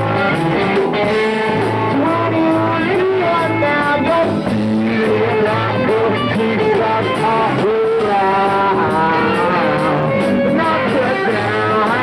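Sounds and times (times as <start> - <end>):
bass guitar: 0.0 - 12.0
electric guitar bending notes: 0.0 - 12.0.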